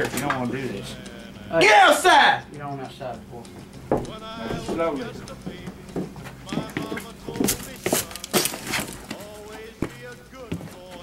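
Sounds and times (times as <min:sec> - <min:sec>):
men talking: 0:00.0 - 0:07.8.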